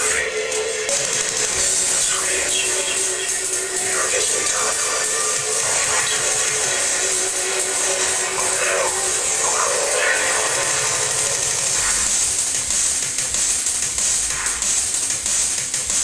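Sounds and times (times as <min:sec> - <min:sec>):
deep bass: 0:00.0 - 0:15.0
drum and bass music: 0:00.0 - 0:16.0
steady hiss: 0:00.0 - 0:16.0.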